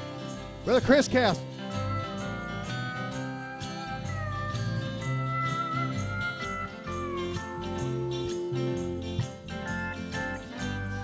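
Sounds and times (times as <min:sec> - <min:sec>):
country gospel band: 0:00.0 - 0:11.0
steel guitar sliding notes: 0:00.0 - 0:11.0.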